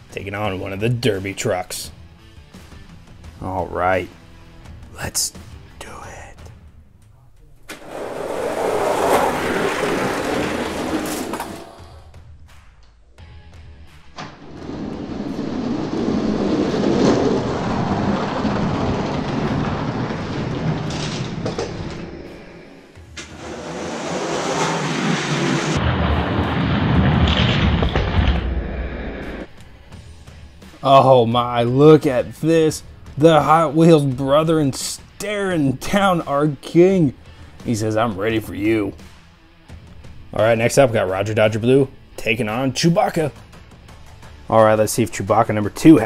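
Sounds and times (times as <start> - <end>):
toy trucks rolling on plastic track: 7.7 - 11.9, 16.0 - 22.0.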